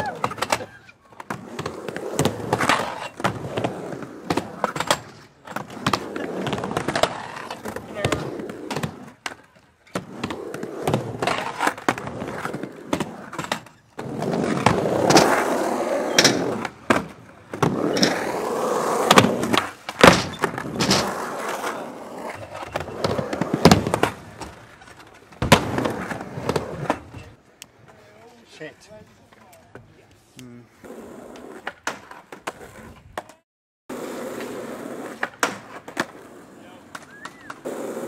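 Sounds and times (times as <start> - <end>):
skateboard wheels rolling: 0.0 - 38.0
skateboard clacks and thuds: 0.1 - 27.4, 35.0 - 36.2.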